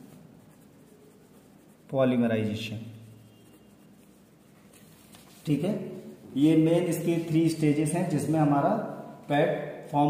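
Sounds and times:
pen scratching on paper: 0.0 - 2.2, 3.0 - 5.0.

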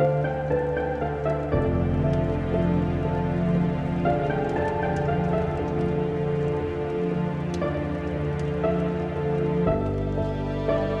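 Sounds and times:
slow melancholic solo piano: 0.0 - 11.0
steady falling rain: 0.0 - 11.0.

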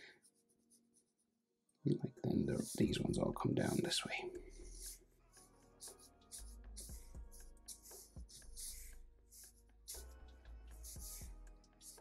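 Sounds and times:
person speaking: 1.9 - 4.3
felt-tip pen scratching paper: 4.6 - 5.0, 5.8 - 10.0, 10.8 - 12.0.

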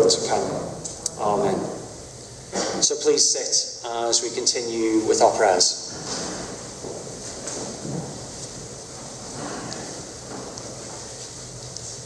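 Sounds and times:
faint knocks and creaks: 5.9 - 11.1
people shuffling into wooden pews: 5.9 - 12.0.

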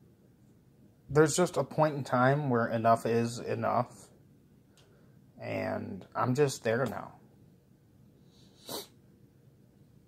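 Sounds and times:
sharp breath through nose: 8.2 - 9.0.

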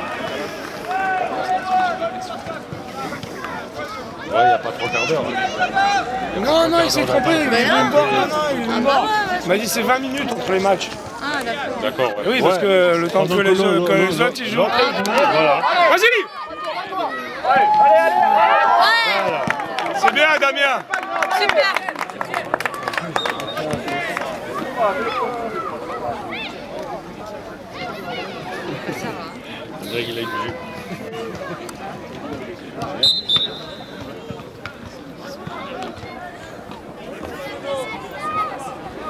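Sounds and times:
spectators talking and calling out: 0.0 - 39.0
referee's whistle blasts: 33.0 - 34.1.

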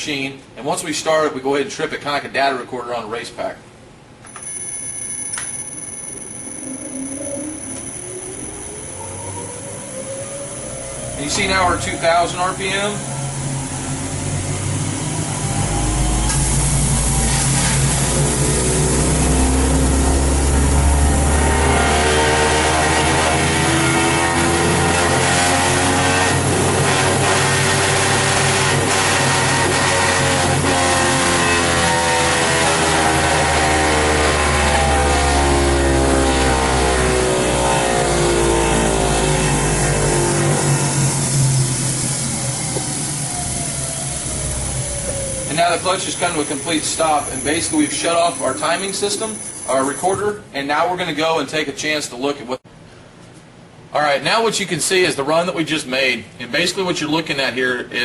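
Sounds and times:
clutch dyno whine and hum: 3.8 - 51.0.

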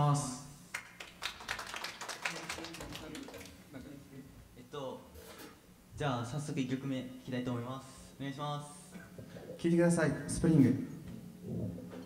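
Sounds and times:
small audience clapping: 0.7 - 4.0.

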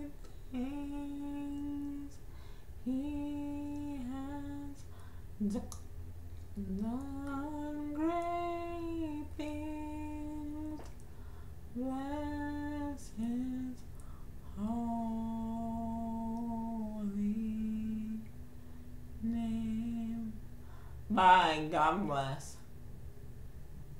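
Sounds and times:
woman singing unaccompanied: 0.0 - 11.1, 11.7 - 18.4, 19.2 - 20.5, 21.1 - 22.7.

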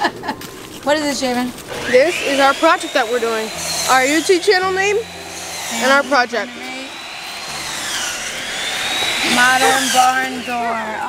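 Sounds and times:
engine noise: 0.0 - 11.0
high whine: 1.7 - 11.0.

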